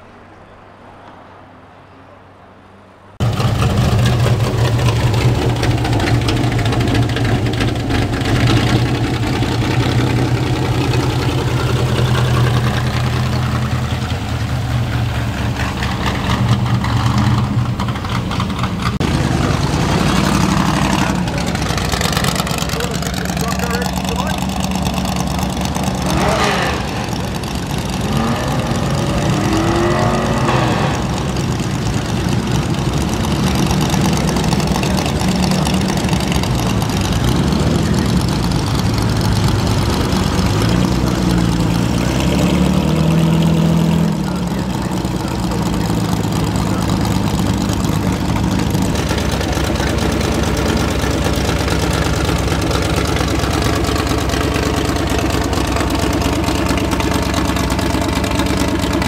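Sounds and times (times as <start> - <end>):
stock car engines revving: 3.2 - 59.0.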